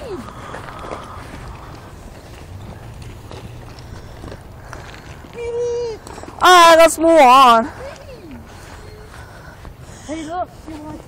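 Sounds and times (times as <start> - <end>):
footsteps on gravel and grass: 0.0 - 11.0
child calling: 5.3 - 6.6.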